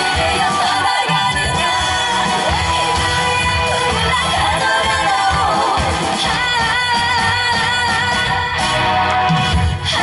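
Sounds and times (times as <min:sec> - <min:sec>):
woman singing: 0:00.0 - 0:08.8
amplified backing music: 0:00.0 - 0:10.0.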